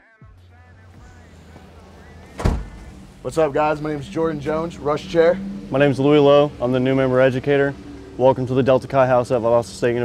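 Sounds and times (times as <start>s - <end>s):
low background rumble: 0.2s - 10.0s
sharp low thump: 2.3s - 3.0s.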